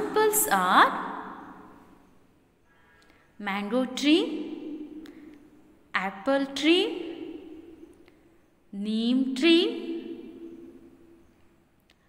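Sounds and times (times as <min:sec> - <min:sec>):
woman narrating: 0:00.0 - 0:01.3, 0:03.4 - 0:04.8, 0:06.0 - 0:07.2, 0:08.7 - 0:10.1.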